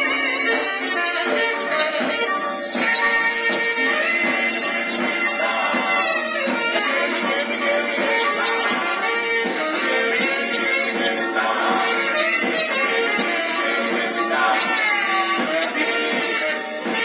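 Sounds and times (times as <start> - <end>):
scratchy doo-wop record playing: 0.0 - 17.0.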